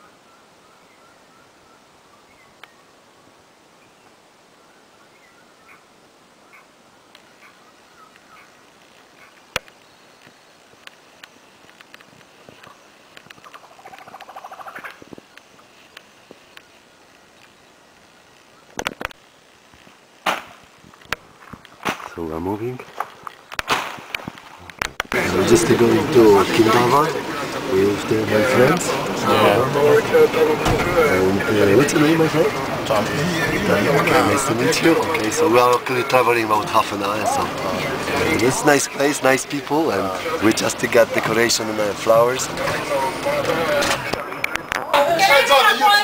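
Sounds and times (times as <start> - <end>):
faint chirping of birds or insects: 0.0 - 23.6.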